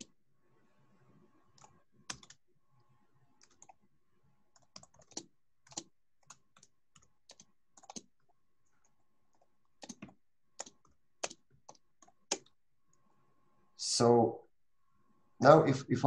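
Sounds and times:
typing on computer keyboard: 1.6s - 2.4s, 3.4s - 3.8s, 4.5s - 8.1s, 8.8s - 12.6s.

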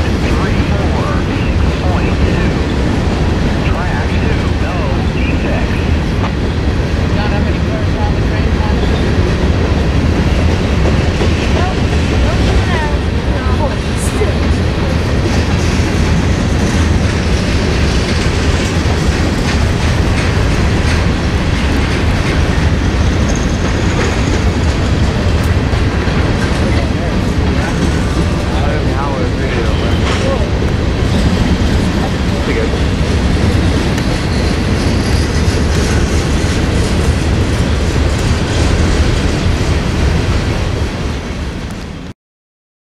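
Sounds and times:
freight train wheels rumbling: 0.0s - 42.1s.

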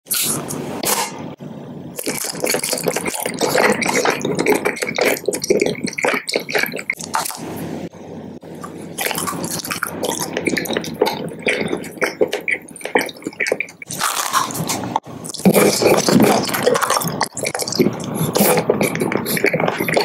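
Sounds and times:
wet chewing and smacking: 2.0s - 7.4s, 8.6s - 20.0s.

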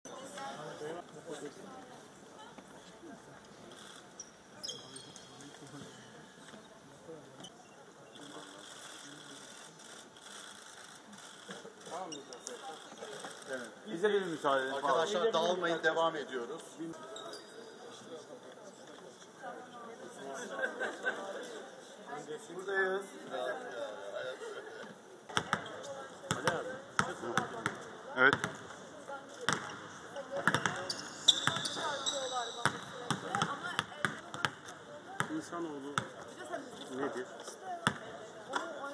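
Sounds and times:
high shoe squeak: 3.8s - 6.1s, 11.9s - 12.7s, 17.0s - 17.8s, 30.7s - 33.1s
brief high squeak: 4.6s - 5.4s
basketballs bouncing on court: 25.3s - 28.8s, 29.4s - 36.3s, 37.8s - 38.2s
basketballs bouncing on hardwood: 30.4s - 31.7s.

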